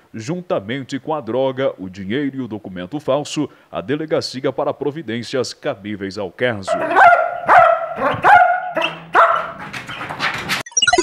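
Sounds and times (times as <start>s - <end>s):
dog barking: 6.7s - 9.6s.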